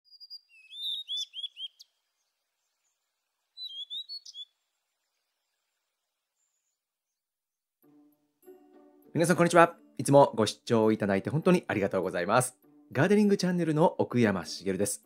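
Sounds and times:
small bird chirping: 0.0 - 7.6.

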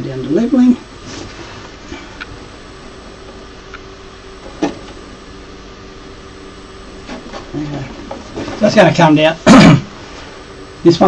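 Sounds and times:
stepper motor whine: 0.0 - 11.0.

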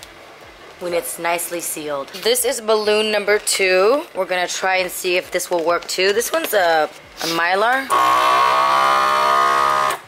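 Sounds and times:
vacuum sealer motor hum: 7.9 - 10.0.

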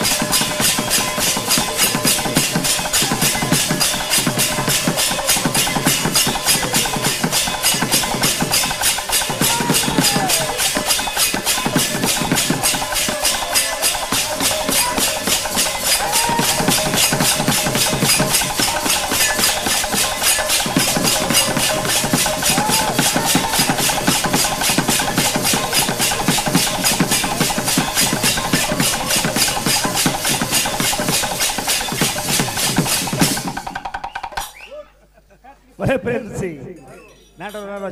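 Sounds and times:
barrel drum: 0.0 - 34.6
brass hand cymbals clashing: 0.0 - 34.7.

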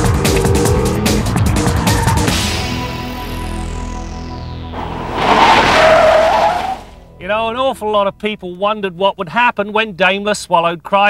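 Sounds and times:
loud rushing burst: 4.8 - 7.0.

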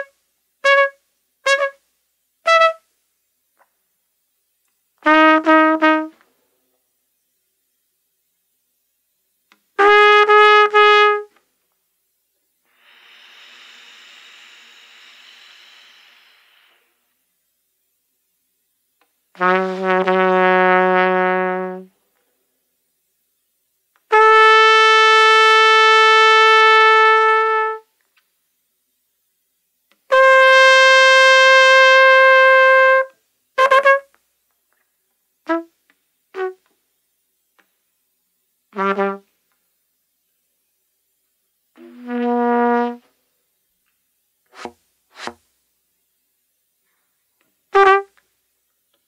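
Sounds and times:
breathy airy trumpet sound: 0.0 - 1.8, 2.4 - 2.9, 5.0 - 6.4, 9.8 - 11.4, 19.3 - 22.0, 24.1 - 27.9, 30.1 - 34.2, 35.4 - 36.6, 38.7 - 39.4, 41.8 - 43.2, 46.8 - 48.2
trumpet short loud notes: 2.5 - 2.8, 47.7 - 48.2.

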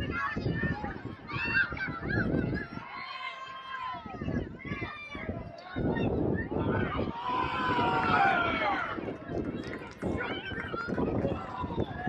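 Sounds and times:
people shouting and calling: 0.0 - 9.2.

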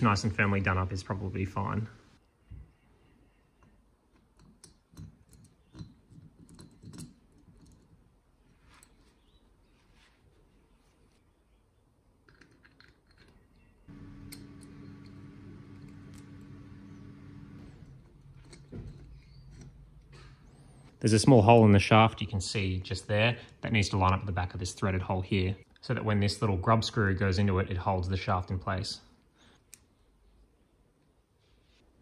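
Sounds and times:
small metal parts clicking: 3.6 - 8.1, 12.2 - 16.3
steady low hum: 13.9 - 21.2.

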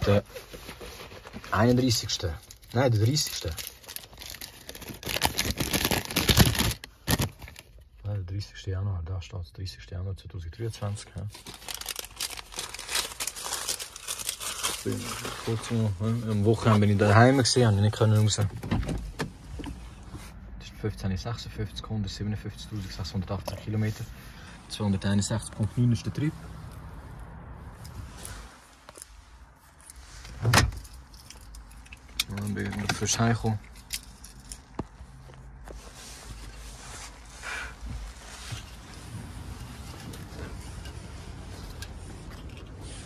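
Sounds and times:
paper crumpling: 0.4 - 7.7, 11.3 - 15.8
low vehicle rumble: 33.6 - 43.0.

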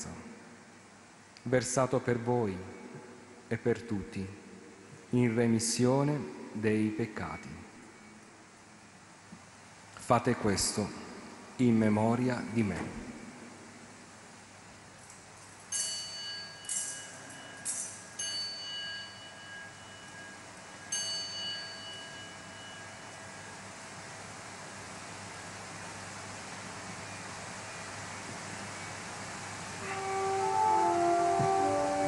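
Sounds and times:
altar bell ringing: 15.7 - 23.5
sustained musical notes: 29.8 - 32.0.

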